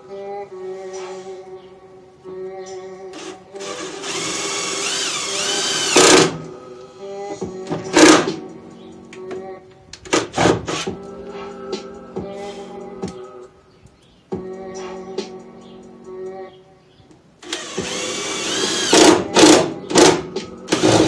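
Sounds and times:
background music: 0:00.0 - 0:21.0
power drill drilling metal: 0:03.2 - 0:06.4, 0:17.4 - 0:19.7, 0:20.7 - 0:21.0.

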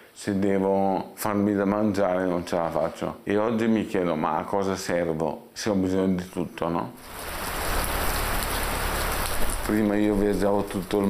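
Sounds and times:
steady hiss: 0:07.0 - 0:11.0.

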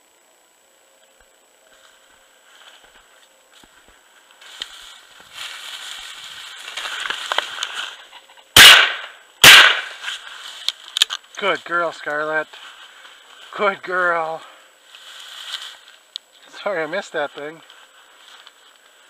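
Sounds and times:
dry grass rustling: 0:01.6 - 0:19.0
shotgun shots: 0:08.6 - 0:10.0.

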